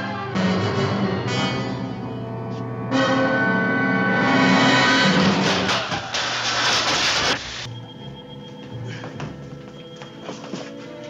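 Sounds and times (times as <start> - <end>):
dramatic orchestral music: 0.0 - 5.8.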